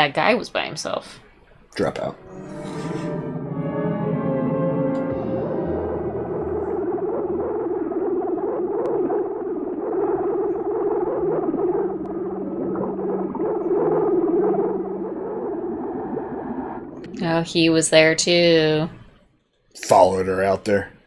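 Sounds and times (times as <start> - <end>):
synthesizer music: 1.8 - 17.9
low repeating note: 1.8 - 18.0
muffled underwater noise: 4.8 - 18.8.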